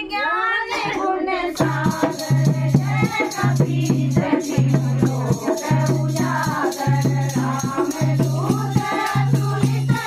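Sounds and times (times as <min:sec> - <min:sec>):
women singing in unison: 0:00.0 - 0:10.0.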